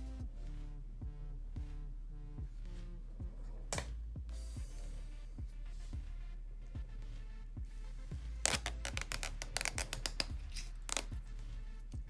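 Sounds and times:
background music with bass beat: 0.0 - 12.0
adhesive liner peeling: 8.4 - 11.2.

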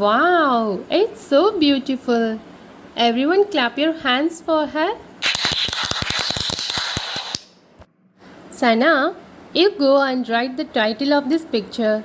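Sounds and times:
group clapping in applause: 5.2 - 7.5.

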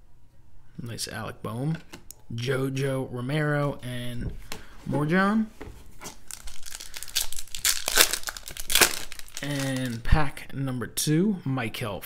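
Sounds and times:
foil wrapper crinkling: 6.0 - 10.2.

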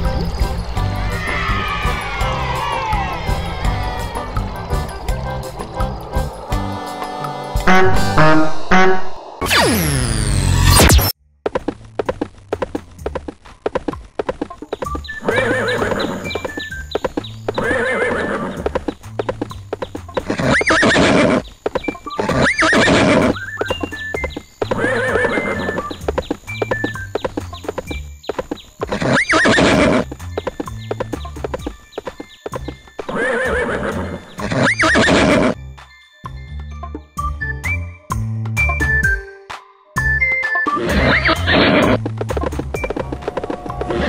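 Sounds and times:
background music: 0.0 - 11.1, 29.0 - 44.0
hooves clip-clopping: 11.4 - 35.5, 40.8 - 44.0
horse whinny: 15.2 - 16.3, 17.6 - 18.8, 20.3 - 21.4, 22.2 - 23.4, 24.7 - 25.9, 28.9 - 30.1, 33.1 - 35.6, 40.7 - 42.0.

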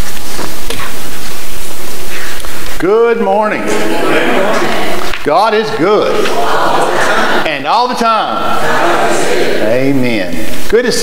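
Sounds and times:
loud steady hiss: 0.0 - 11.0.

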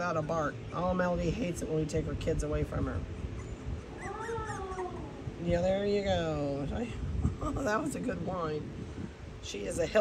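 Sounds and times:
dog whining: 3.2 - 5.3.

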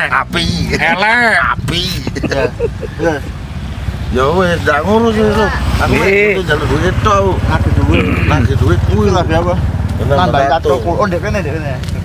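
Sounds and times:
men talking and laughing: 0.0 - 12.0.

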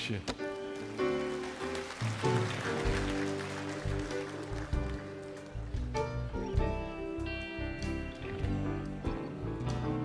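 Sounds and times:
live band playing held chords: 0.4 - 10.0
low bass notes: 4.6 - 10.0.

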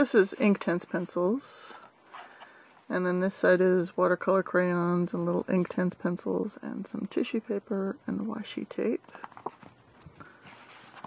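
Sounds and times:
page turning: 9.2 - 11.0.

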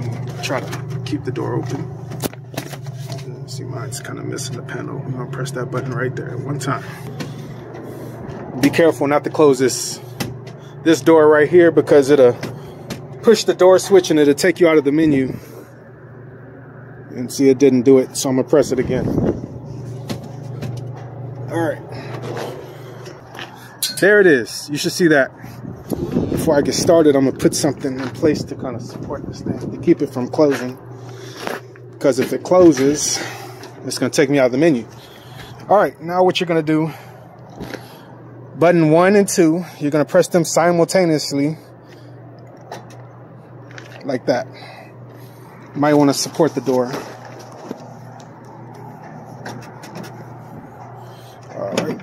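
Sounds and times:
steady low hum: 0.0 - 52.0
camera handling rubbing and scraping: 2.1 - 3.3, 46.5 - 51.5.

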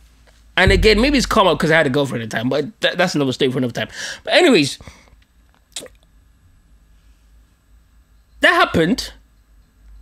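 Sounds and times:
wet mouth click: 5.7 - 6.0.

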